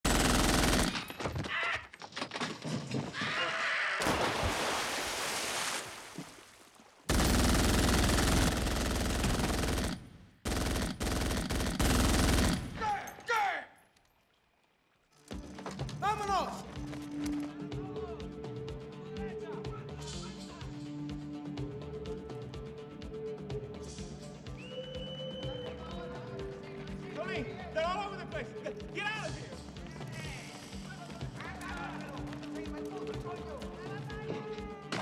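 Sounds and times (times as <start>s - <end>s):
automatic gunfire bursts: 0.1s - 1.1s, 7.1s - 12.8s.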